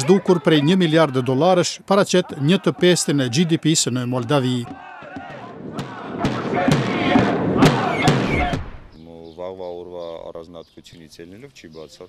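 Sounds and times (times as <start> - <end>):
crowd shouting: 0.0 - 8.8
bass drum beats: 4.6 - 9.0.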